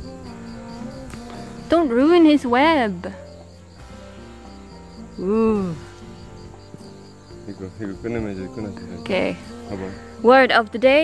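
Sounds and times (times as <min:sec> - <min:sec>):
insect chirping trill: 0:00.0 - 0:11.0.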